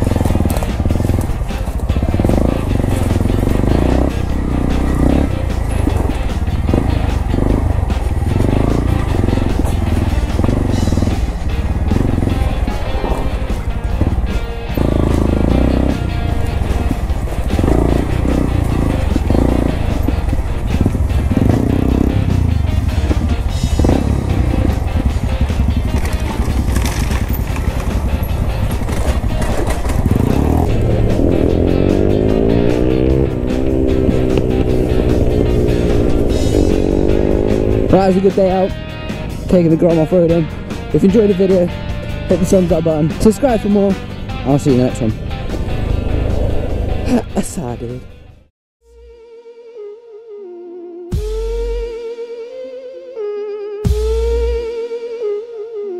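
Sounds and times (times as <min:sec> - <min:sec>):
motorcycle engine revving: 0:00.0 - 0:49.1
background music: 0:00.0 - 0:55.9.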